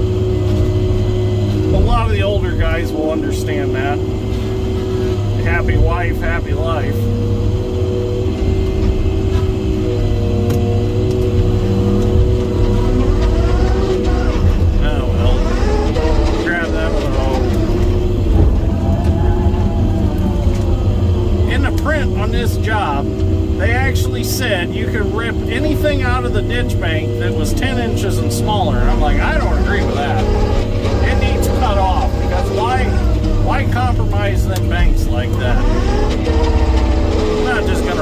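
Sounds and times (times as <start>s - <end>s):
diesel engine running under load: 0.0s - 38.0s.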